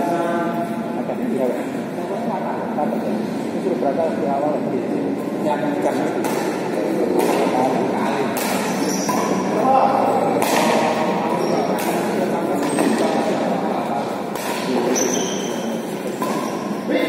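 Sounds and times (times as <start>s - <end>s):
people talking: 0.0s - 17.0s
racket hitting shuttlecock: 6.2s - 6.6s, 7.2s - 7.5s, 8.3s - 9.5s, 10.4s - 13.2s, 14.3s - 16.7s.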